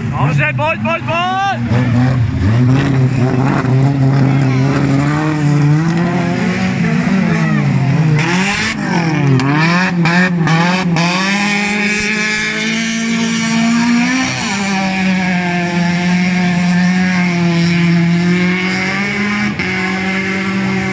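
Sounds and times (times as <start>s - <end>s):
car engines revving: 0.0s - 20.9s.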